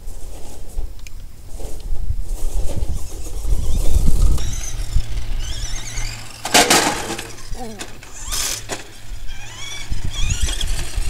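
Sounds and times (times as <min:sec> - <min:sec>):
toy truck motor whining: 0:02.4 - 0:11.0.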